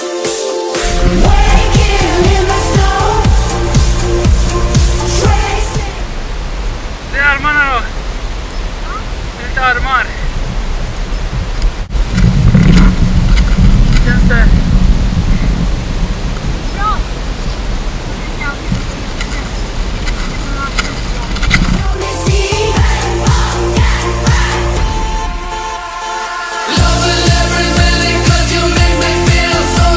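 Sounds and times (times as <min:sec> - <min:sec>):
electronic music with steady beat: 0:00.0 - 0:06.1, 0:21.7 - 0:29.9
faint background song: 0:00.0 - 0:06.2, 0:21.5 - 0:29.9
wind rushing over microphone: 0:00.8 - 0:04.0, 0:07.9 - 0:22.0.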